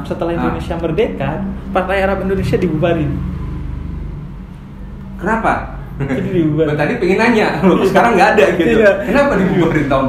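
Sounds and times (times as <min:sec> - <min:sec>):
motor vehicle rumble: 0:00.0 - 0:06.6.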